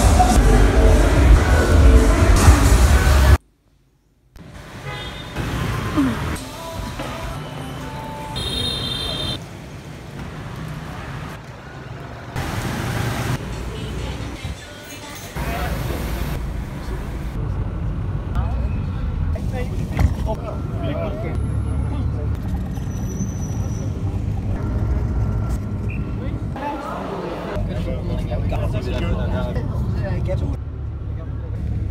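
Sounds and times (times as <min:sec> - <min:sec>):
street noise: 0:00.0 - 0:31.9
bus engine and road noise: 0:04.4 - 0:31.9.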